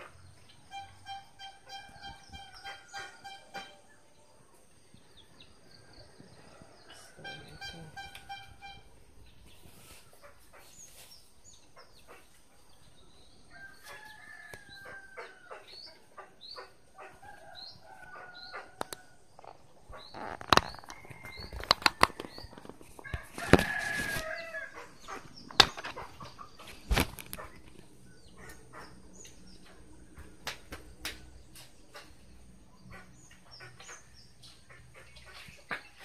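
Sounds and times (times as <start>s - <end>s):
birds chirping: 0.0s - 36.0s
handling noise: 18.8s - 24.5s, 25.3s - 27.8s.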